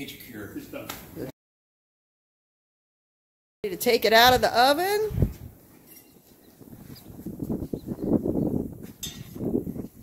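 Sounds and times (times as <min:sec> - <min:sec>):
metallic clink: 0:05.8 - 0:06.2, 0:09.0 - 0:09.4.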